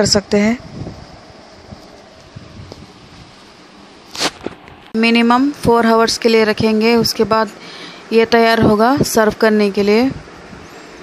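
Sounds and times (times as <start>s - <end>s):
short rush of noise: 4.0s - 4.9s.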